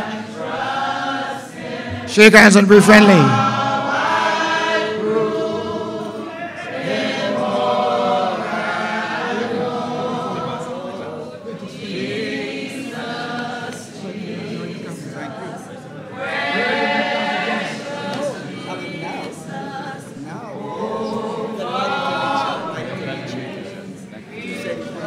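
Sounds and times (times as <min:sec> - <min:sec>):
congregation singing a hymn: 0:00.0 - 0:25.0.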